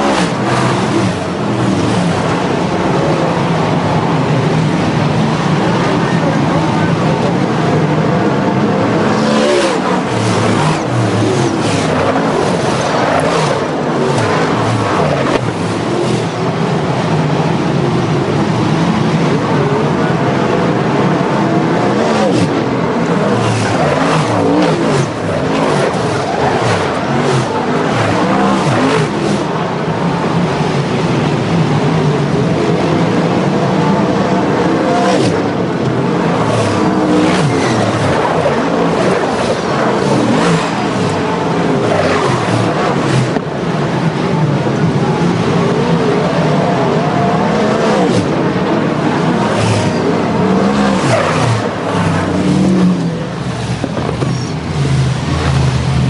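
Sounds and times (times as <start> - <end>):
cars passing close by: 0.0 - 56.0
race car engines roaring: 0.0 - 56.0.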